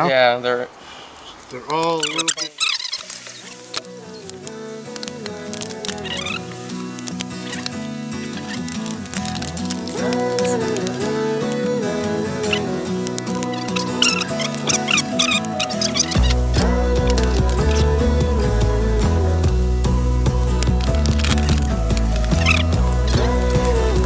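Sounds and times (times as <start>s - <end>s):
background music: 3.4s - 24.0s.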